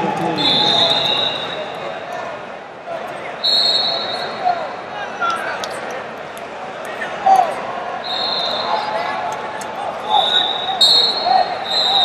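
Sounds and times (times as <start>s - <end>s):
shouting voices: 0.0s - 6.0s
general noise of hall: 0.0s - 12.0s
whistle shrilling: 0.4s - 1.6s, 3.4s - 4.4s, 8.1s - 8.9s, 10.1s - 12.0s.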